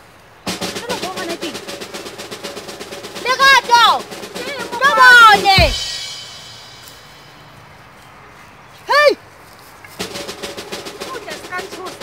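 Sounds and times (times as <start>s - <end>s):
percussive drum music: 0.4s - 7.4s, 10.0s - 12.0s.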